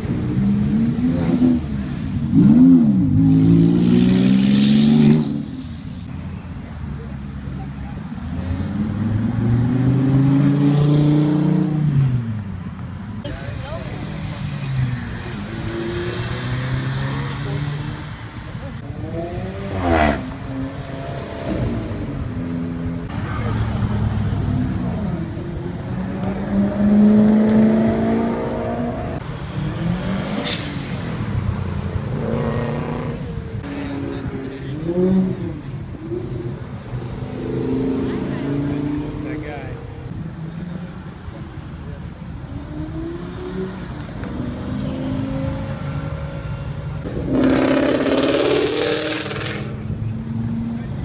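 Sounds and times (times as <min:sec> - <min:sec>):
sports cars accelerating past: 0:18.8 - 0:35.6.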